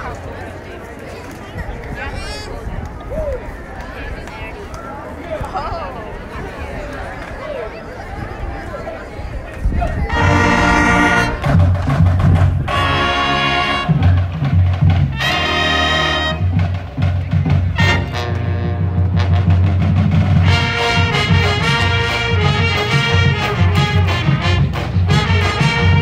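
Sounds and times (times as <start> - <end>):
marching band playing: 10.1 - 26.0.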